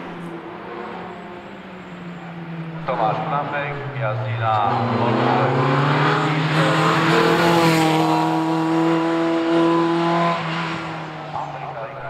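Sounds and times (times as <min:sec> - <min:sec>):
racing car engine accelerating: 0:00.0 - 0:12.0.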